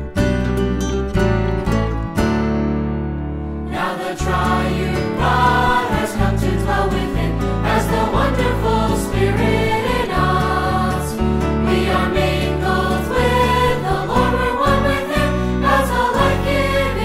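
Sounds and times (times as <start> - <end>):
instrumental accompaniment: 0.0 - 17.0
choir singing a hymn: 3.7 - 17.0.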